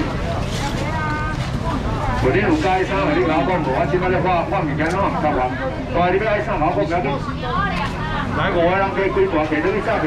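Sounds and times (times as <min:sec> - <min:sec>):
voices in background: 0:00.0 - 0:10.0.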